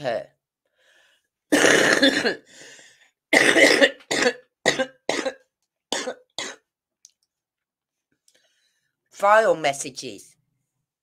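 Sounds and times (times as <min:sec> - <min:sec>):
person coughing: 0:01.5 - 0:02.5, 0:03.3 - 0:06.7.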